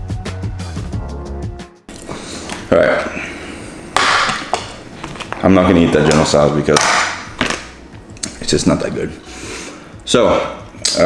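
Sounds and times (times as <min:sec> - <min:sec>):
background music with beat: 0:00.0 - 0:01.9.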